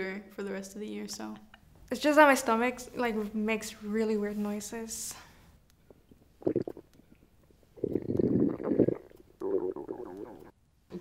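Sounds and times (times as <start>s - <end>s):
stomach rumbling and gurgling: 5.8s - 10.5s.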